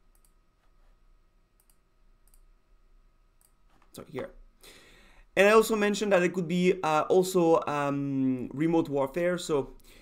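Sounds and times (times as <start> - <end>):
computer mouse clicks: 0.0 - 0.4, 1.6 - 2.5.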